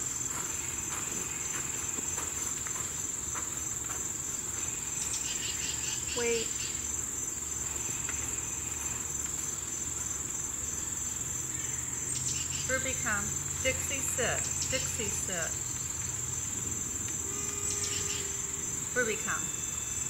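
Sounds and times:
insects droning: 0:00.0 - 0:20.0.

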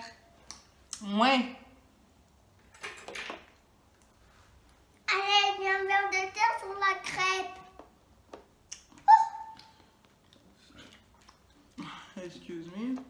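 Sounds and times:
girl vocalizing high-pitched: 0:09.0 - 0:09.6.

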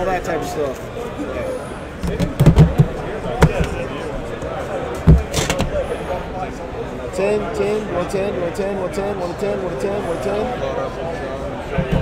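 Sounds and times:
tins and boxes knocking on table: 0:02.1 - 0:03.7.

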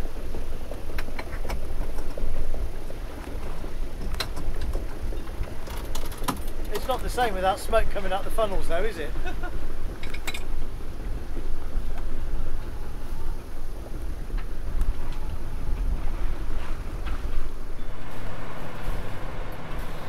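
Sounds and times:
wind rumble on microphone: 0:00.0 - 0:20.0
water rushing past hull: 0:17.5 - 0:20.0.

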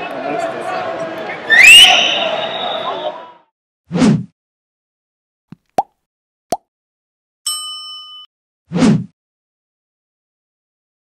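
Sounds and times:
bright bell-like chime: 0:07.5 - 0:08.3.

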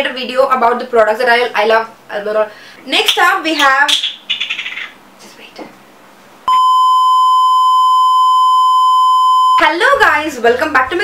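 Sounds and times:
steady electronic beep tone: 0:06.5 - 0:09.6.

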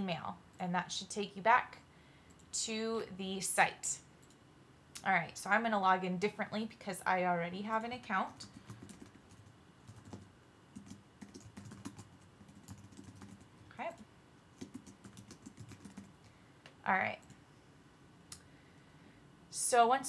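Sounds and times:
computer keyboard typing: 0:08.3 - 0:14.0, 0:14.6 - 0:16.1.

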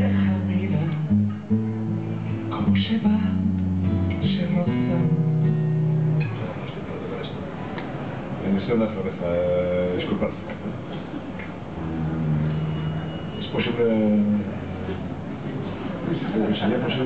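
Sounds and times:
acoustic guitar chords: 0:00.0 - 0:06.6, 0:11.7 - 0:13.4.

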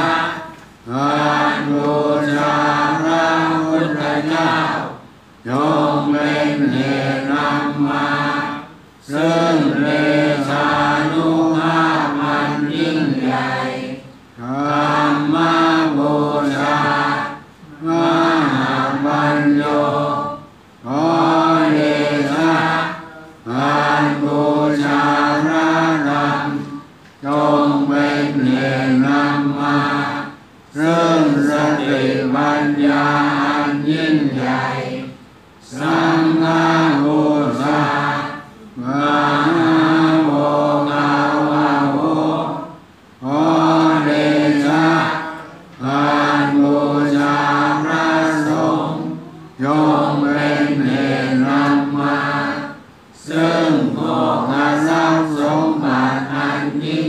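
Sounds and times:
chanting in unison: 0:00.0 - 0:57.0.

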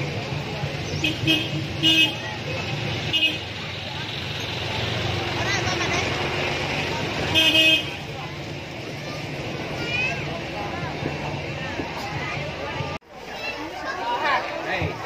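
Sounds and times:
street traffic hum: 0:00.0 - 0:15.0
vehicle horn toots: 0:07.3 - 0:08.1.

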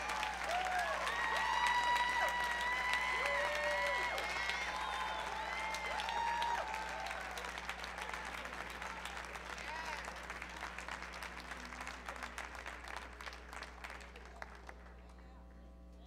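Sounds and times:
call from crowd: 0:00.0 - 0:12.5
audience applauding: 0:00.0 - 0:15.2.

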